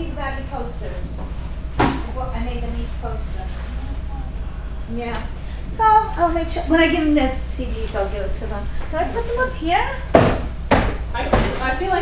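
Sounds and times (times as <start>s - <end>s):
voices: 0.0s - 10.1s
sharp knocks: 10.1s - 11.7s.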